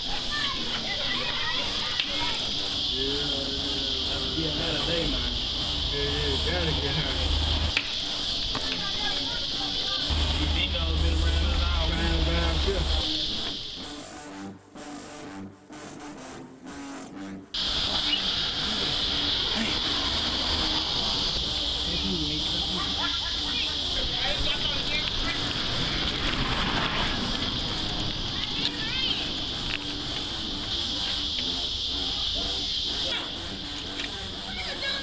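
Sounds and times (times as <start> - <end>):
high-pitched hiss: 0.0 - 14.2, 17.6 - 35.0
indistinct talking: 0.0 - 14.4, 17.6 - 35.0
music: 0.0 - 35.0.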